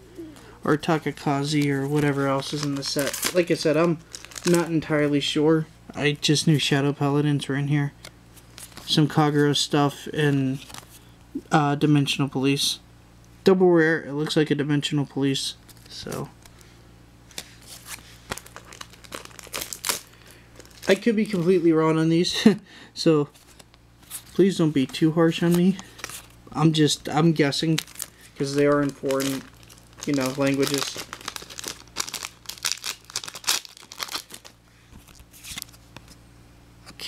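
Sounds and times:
foil wrappers crinkling: 0.7s - 5.2s, 17.3s - 22.5s, 23.3s - 36.1s.

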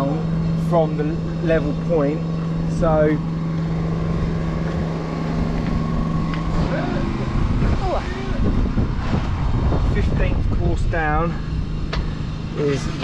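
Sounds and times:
low engine-like hum: 0.0s - 13.0s
wind rumble on microphone: 0.2s - 13.0s.

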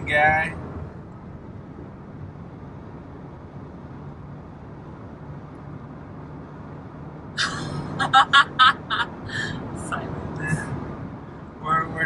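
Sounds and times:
car cabin road and engine noise: 0.0s - 12.0s.

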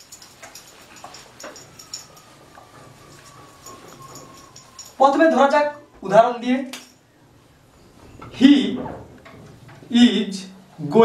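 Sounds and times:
duster squeaking on whiteboard: 0.6s - 5.5s.

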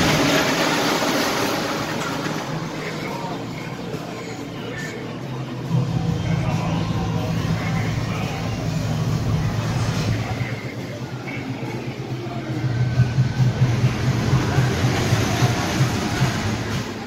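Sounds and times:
low vehicle engine hum: 0.0s - 17.0s
vehicles passing: 0.0s - 17.0s.

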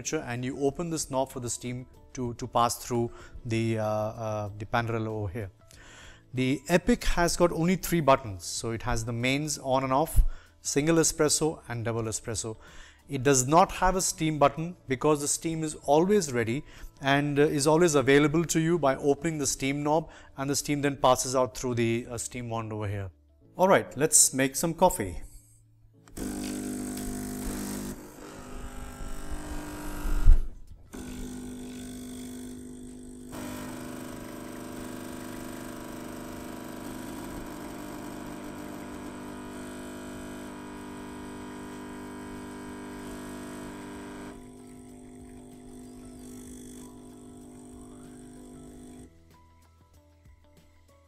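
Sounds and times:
espresso machine pumps buzzing: 26.1s - 49.1s.

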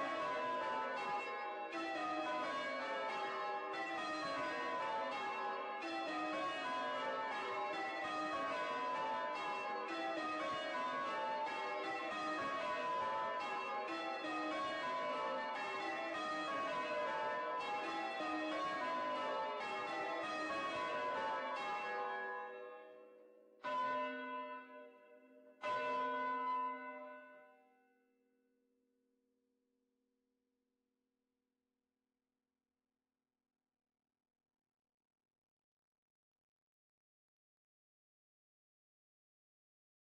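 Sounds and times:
church bells change ringing: 0.0s - 27.5s.

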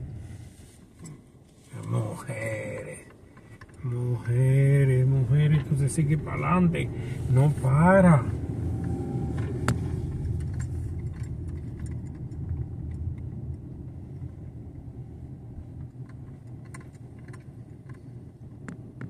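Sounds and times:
car road and engine rumble: 0.0s - 19.0s
light clicks inside car: 1.8s - 14.8s, 15.6s - 19.0s.

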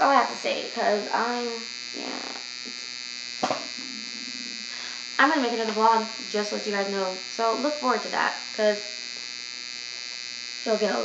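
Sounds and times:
steady electrical buzz: 0.0s - 11.0s.

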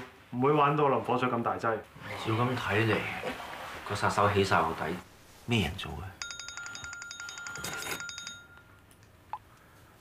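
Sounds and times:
phone ringing with pulsing ringtone: 6.2s - 8.8s.

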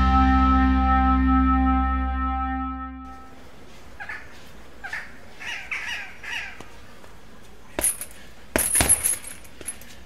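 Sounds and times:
bird calling: 3.8s - 7.0s
metallic jingle: 7.8s - 10.0s.

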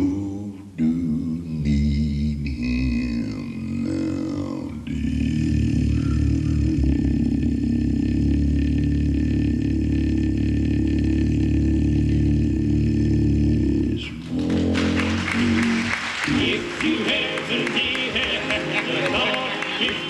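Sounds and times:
bass singer holding low note: 0.8s - 16.0s
voices: 3.3s - 20.0s
applause: 14.2s - 20.0s.

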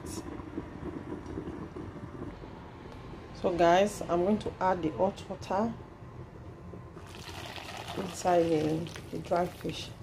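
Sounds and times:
pot simmering hiss: 0.0s - 10.0s.

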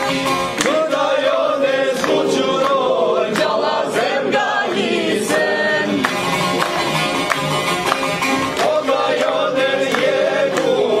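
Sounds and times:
group of men and women singing: 0.0s - 6.8s, 8.2s - 11.0s
hand claps: 0.0s - 11.0s
plucked lutes: 1.8s - 11.0s.

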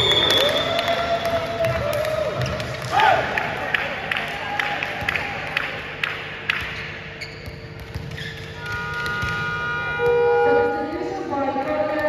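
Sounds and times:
ball bouncing on hall floor: 0.0s - 10.8s, 11.6s - 12.0s
horn-like tone: 8.6s - 11.5s.

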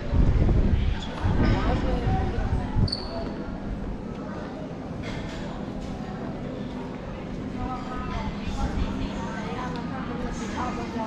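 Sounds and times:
passers-by talking: 0.0s - 11.0s.

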